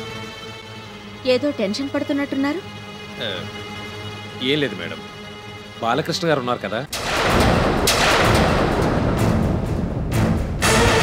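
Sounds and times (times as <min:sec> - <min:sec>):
dramatic crash sound effect: 0:06.9 - 0:11.0
sharp hit: 0:06.9 - 0:11.0.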